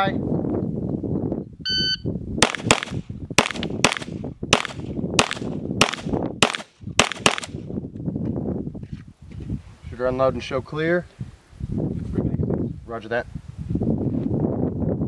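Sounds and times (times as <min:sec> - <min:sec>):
shot timer beep: 0:01.7 - 0:02.1
pistol shots: 0:02.4 - 0:07.6.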